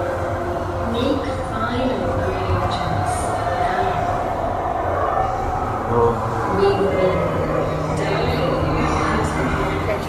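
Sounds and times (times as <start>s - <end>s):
ride vehicles rumbling on track: 0.0s - 10.0s.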